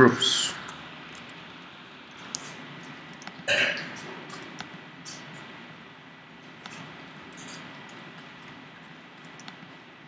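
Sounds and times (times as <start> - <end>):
keyboard and mouse clicks: 4.3 - 4.8, 9.2 - 9.7.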